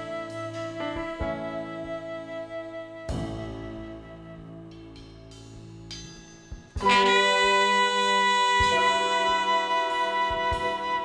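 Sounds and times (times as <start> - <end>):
jazz-rock ensemble playing: 0.0 - 11.0
horns playing sustained chord: 6.8 - 11.0.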